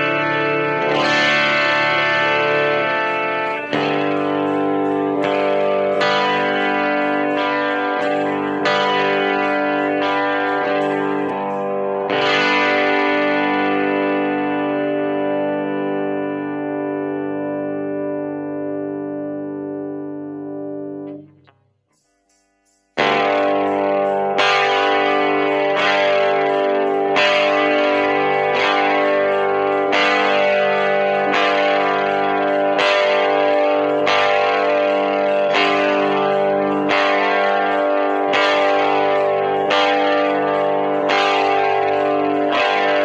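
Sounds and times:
electric guitar strumming chords: 0.0 - 21.6, 23.0 - 43.0.

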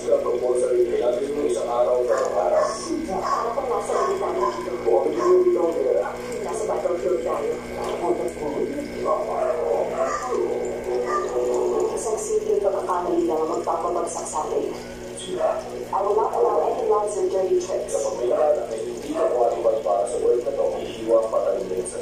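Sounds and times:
person talking: 0.0 - 22.0.

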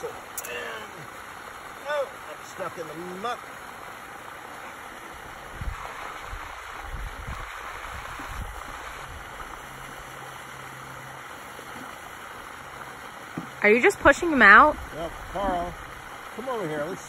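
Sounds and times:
steady hiss of water: 0.0 - 17.0
water sloshing and gurgling: 0.0 - 17.0.

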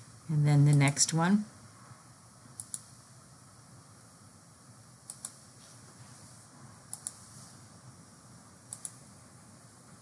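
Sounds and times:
faint steady hiss: 0.0 - 10.0
computer mouse clicks: 2.6 - 2.9, 5.0 - 5.4, 6.9 - 7.2, 8.7 - 9.0.

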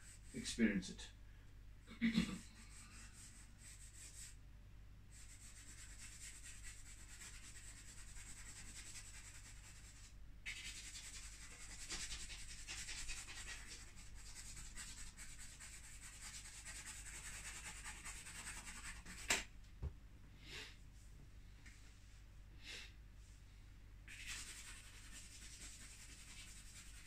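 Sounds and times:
drawing stick scratching paper: 5.1 - 19.4, 24.1 - 27.0.

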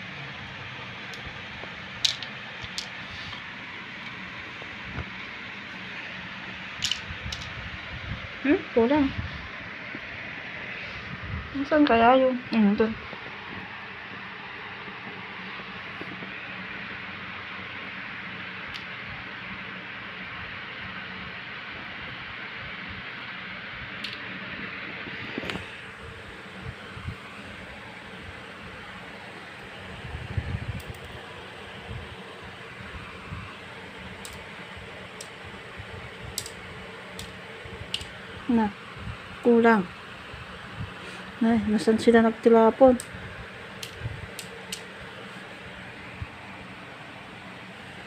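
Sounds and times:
fan whirring hiss: 0.0 - 48.0.

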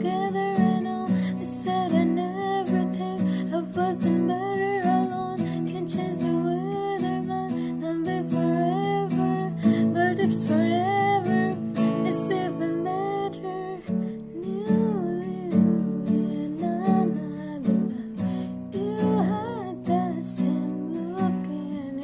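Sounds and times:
acoustic guitar strumming: 0.0 - 22.0
woman singing: 0.0 - 22.0.

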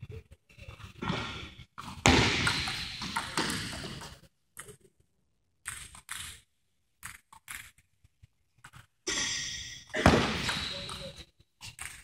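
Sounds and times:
loud echoing thud: 2.0 - 3.5.

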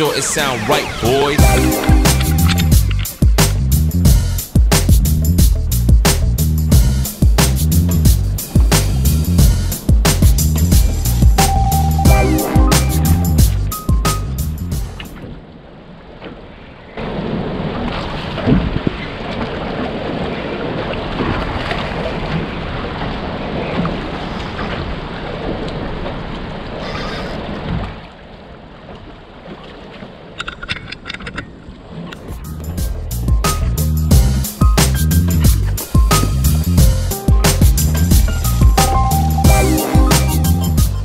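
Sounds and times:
background music with a beat: 0.0 - 15.1, 32.4 - 41.0
sea noise: 0.0 - 41.0
wind rushing: 8.1 - 14.0.

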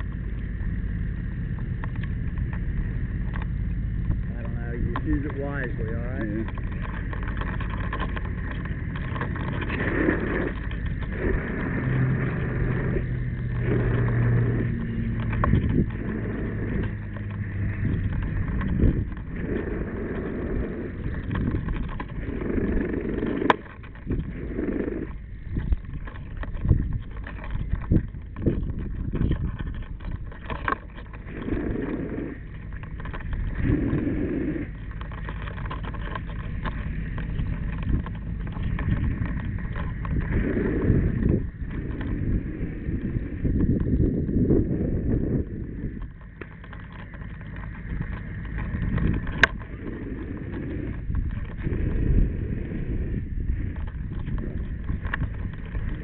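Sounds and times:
low rumble: 0.0 - 56.0.

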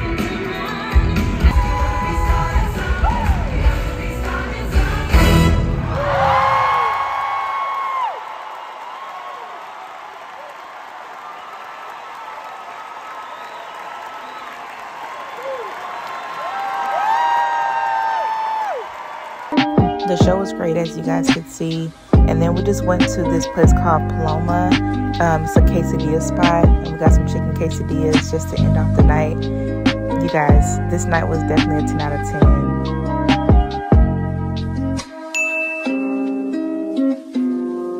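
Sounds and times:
person singing: 0.0 - 5.6, 19.6 - 34.1
audience cheering and applauding: 0.6 - 20.4
band music with heavy beat: 19.6 - 20.4, 32.4 - 35.1
high held voices: 19.9 - 32.7.

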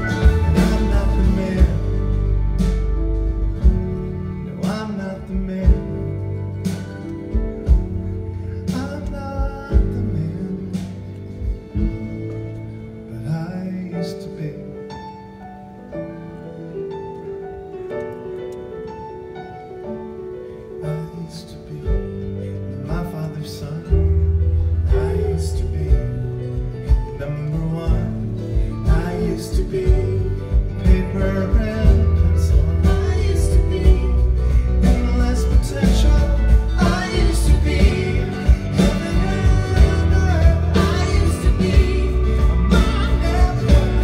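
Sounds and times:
person singing: 0.0 - 3.0, 3.9 - 11.8, 20.7 - 44.0
live band playing: 0.0 - 44.0.

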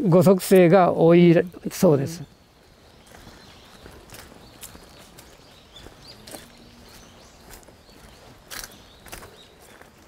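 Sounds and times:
footsteps on a path: 2.1 - 10.0.

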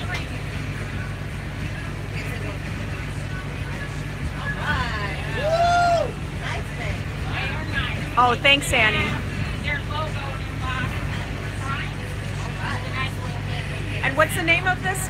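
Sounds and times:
bus engine and road noise: 0.0 - 15.0
passengers chattering: 0.0 - 15.0.

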